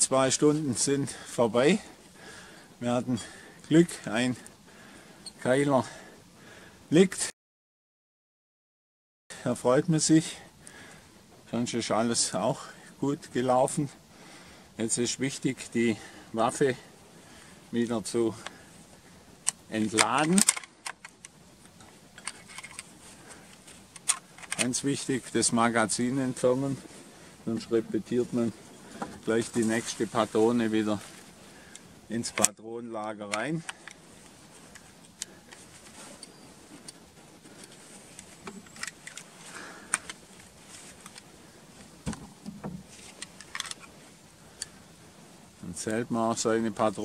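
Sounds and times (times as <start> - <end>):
rifle action clicking and rattling: 19.4 - 24.8, 31.7 - 32.6, 33.2 - 37.0, 37.6 - 41.3, 42.1 - 43.9.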